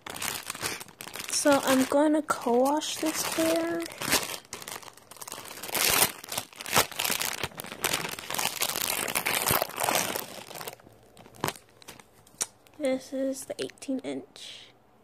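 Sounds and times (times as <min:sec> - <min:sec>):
plastic packaging crinkling: 0:00.0 - 0:12.8.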